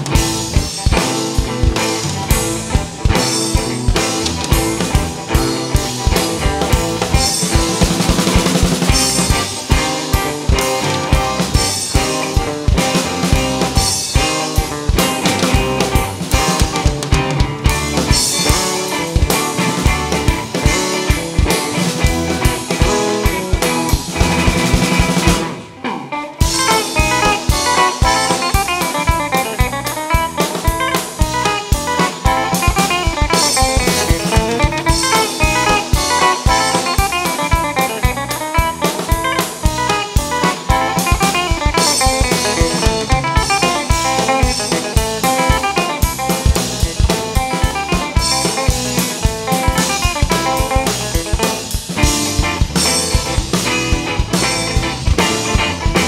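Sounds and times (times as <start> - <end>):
rock band playing instrumental: 0.0 - 56.0.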